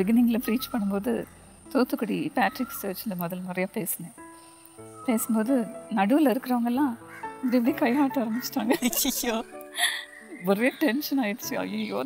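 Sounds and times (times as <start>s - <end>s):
woman talking: 0.0s - 4.2s, 5.1s - 9.0s.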